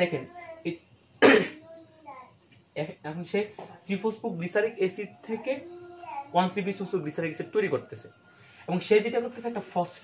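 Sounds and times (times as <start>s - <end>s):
man coughing: 1.2s - 1.6s.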